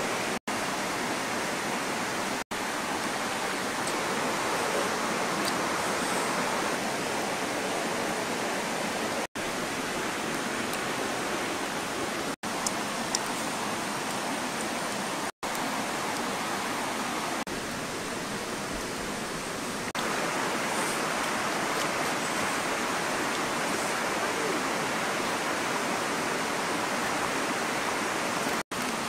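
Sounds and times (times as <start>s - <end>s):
river water rushing: 0.0s - 29.0s.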